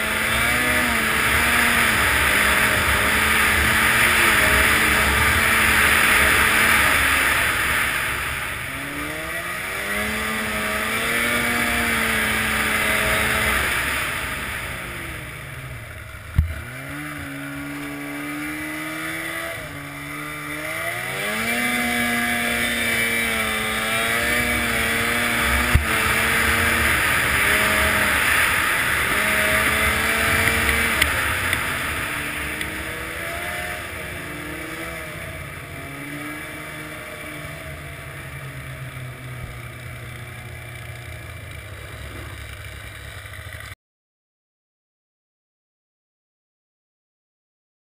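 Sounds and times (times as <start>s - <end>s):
snowmobile engine revving: 0.0s - 43.8s.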